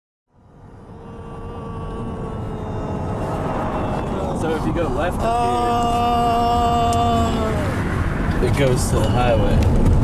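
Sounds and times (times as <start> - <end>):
steady hum: 0.3 - 8.4
engine and road rumble: 0.3 - 10.0.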